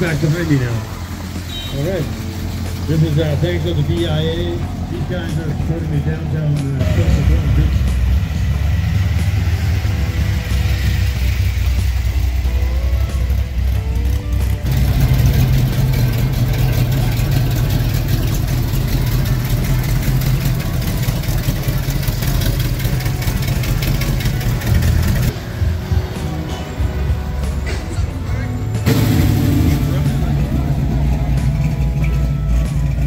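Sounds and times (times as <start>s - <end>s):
background music: 0.0s - 33.0s
car engines driving past: 0.0s - 33.0s.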